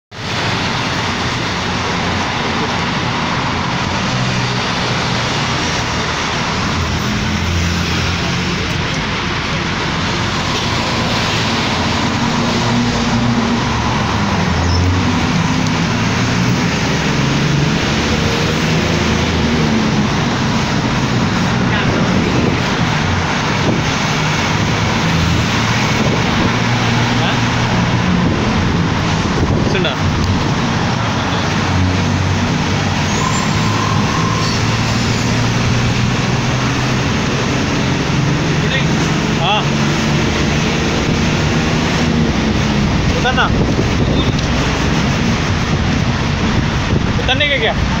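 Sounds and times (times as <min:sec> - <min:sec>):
road and traffic noise: 0:00.0 - 0:48.0
bus engine running: 0:00.1 - 0:48.0.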